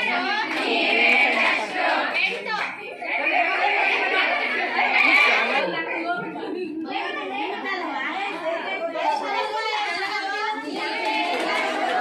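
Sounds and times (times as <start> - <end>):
women chattering and calling out: 2.1 - 10.7.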